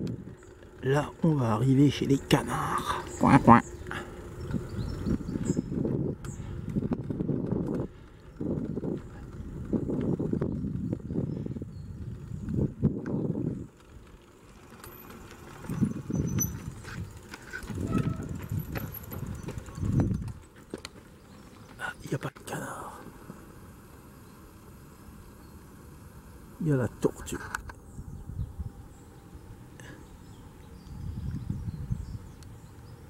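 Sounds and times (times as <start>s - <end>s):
wind buffeting microphone: 0.0s - 14.3s, 15.3s - 20.6s, 27.6s - 33.0s.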